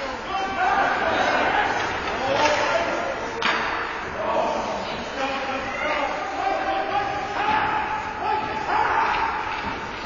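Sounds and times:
hockey stick or puck crack: 0:01.8 - 0:03.9.

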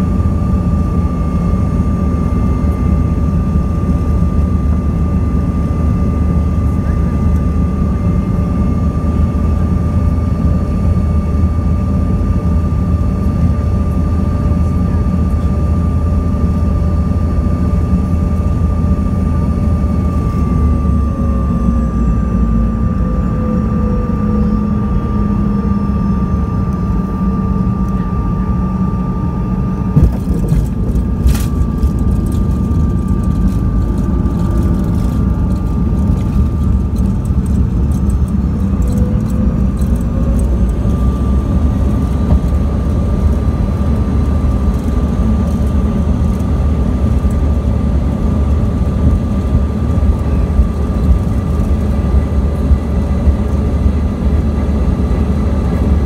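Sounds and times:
jet engine drone: 0:00.0 - 0:56.0.

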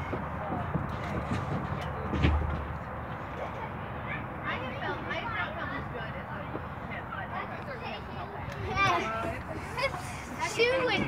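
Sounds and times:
distant children's voices: 0:00.0 - 0:11.0.

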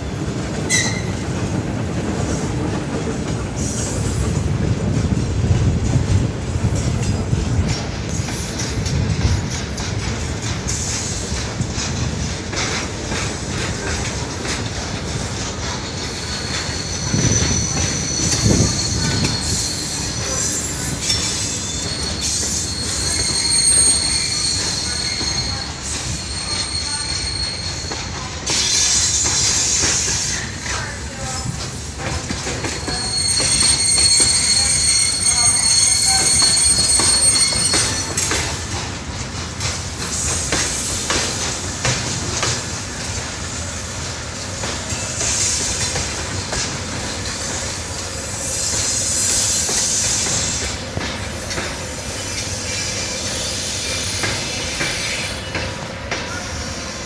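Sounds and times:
freight train rumbling: 0:00.0 - 0:57.0
clacks from rail joints: 0:00.2 - 0:48.0, 0:48.6 - 0:56.6
train wheels squealing: 0:00.6 - 0:04.6, 0:06.7 - 0:57.0.

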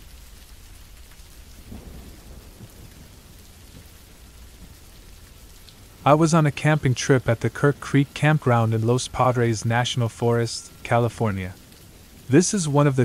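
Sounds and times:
rain hissing: 0:00.0 - 0:13.0
low thunder rumble: 0:00.6 - 0:09.8.

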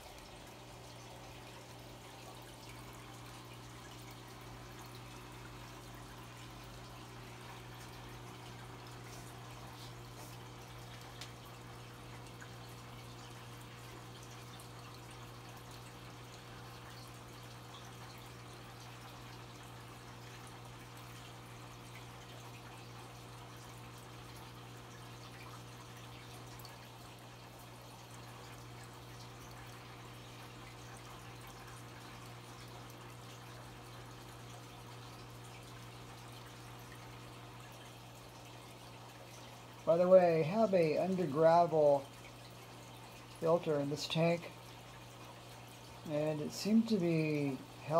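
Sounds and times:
aquarium filter humming: 0:00.0 - 0:47.9
water trickling and dripping: 0:00.0 - 0:47.9.

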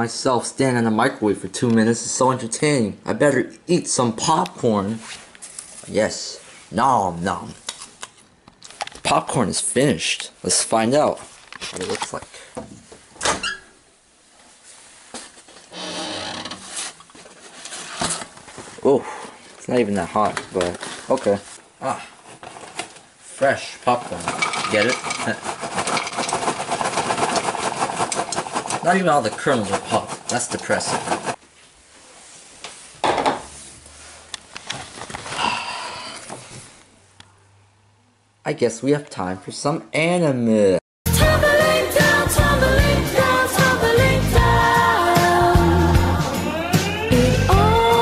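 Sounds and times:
paper bag rustling: 0:16.6 - 0:31.4, 0:34.0 - 0:35.5.

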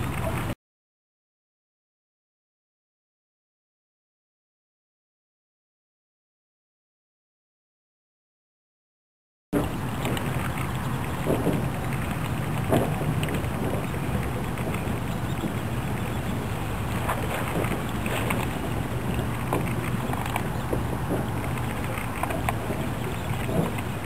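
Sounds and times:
low rumble and hum: 0:09.6 - 0:24.0
small clicks and splashes: 0:09.6 - 0:24.0
wind on microphone: 0:09.6 - 0:24.0.

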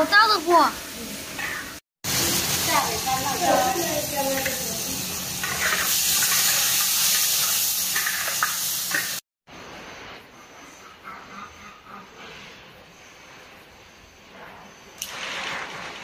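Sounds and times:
meat sizzling in a wok: 0:00.0 - 0:09.2
ladle stirring in a wok: 0:03.7 - 0:09.2.

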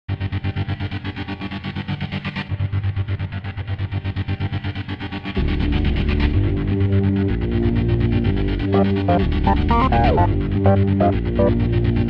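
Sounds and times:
distorted electric guitar pulsing: 0:08.8 - 0:11.6.

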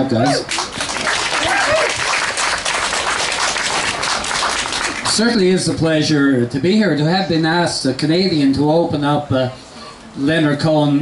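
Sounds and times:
audience applauding: 0:00.3 - 0:05.2.

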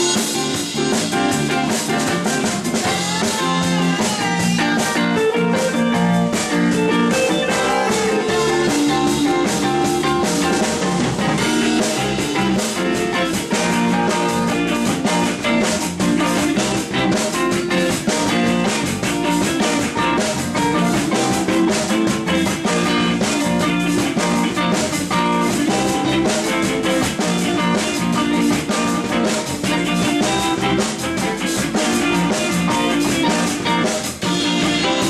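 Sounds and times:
rock band playing: 0:00.0 - 0:35.0.

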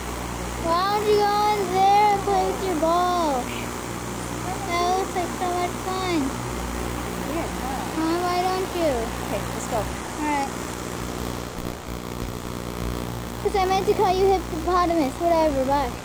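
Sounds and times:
steady low hum: 0:00.0 - 0:16.0
indistinct voices: 0:00.6 - 0:10.8, 0:13.4 - 0:16.0.

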